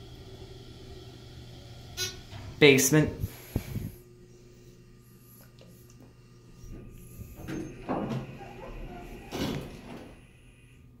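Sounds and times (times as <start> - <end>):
steady low hum: 0.0 - 11.0
elevator doors sliding open: 6.8 - 10.3.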